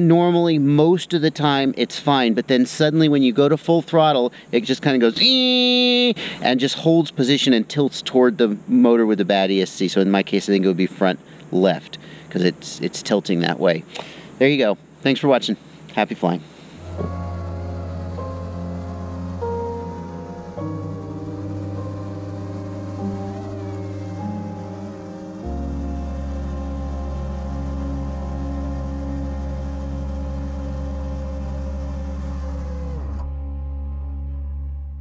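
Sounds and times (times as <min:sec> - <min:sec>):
slow ambient music: 0:16.5 - 0:35.0.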